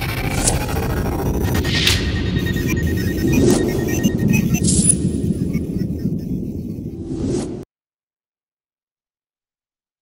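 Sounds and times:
low rumble: 0.0s - 7.6s
whoosh sound effect: 0.0s - 7.6s.

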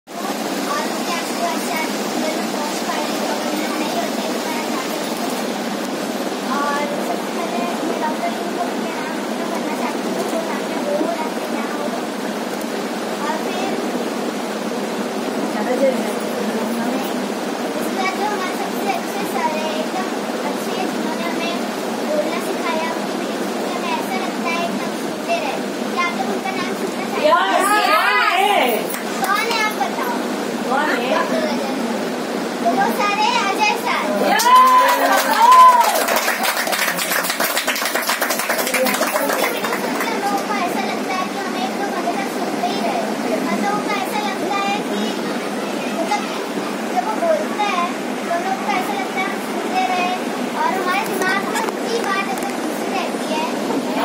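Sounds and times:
faint indistinct voices: 0.1s - 54.0s
steady loud noise: 0.1s - 54.0s.

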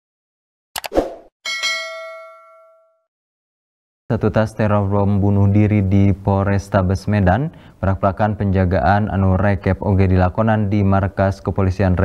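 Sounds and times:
notification bell ding: 1.5s - 3.0s.

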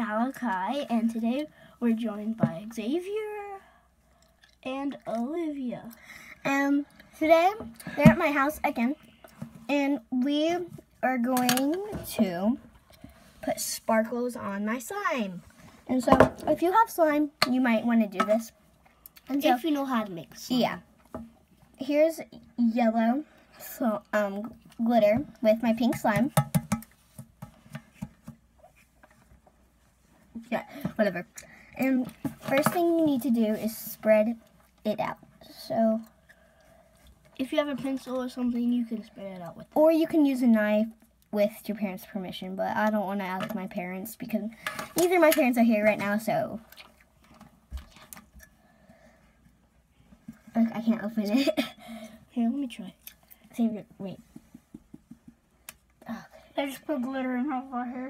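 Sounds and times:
child speaking: 0.0s - 3.7s, 4.6s - 9.0s, 9.7s - 12.6s, 13.4s - 18.5s, 19.3s - 20.8s, 37.4s - 46.6s, 56.1s - 58.0s
small objects clicking and tapping: 25.9s - 28.4s.

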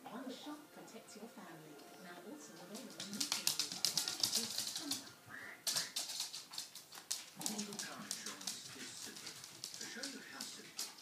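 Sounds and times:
dog claws clicking on hardwood: 2.6s - 5.1s, 5.7s - 11.0s.

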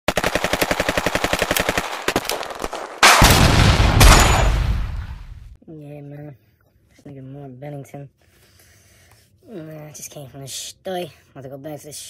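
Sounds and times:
automatic gunfire: 0.1s - 4.8s
loud blast with deep rumble: 3.2s - 5.6s.

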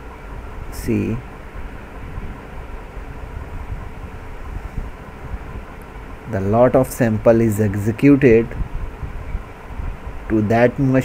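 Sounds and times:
low rumble and hiss: 0.0s - 11.0s.

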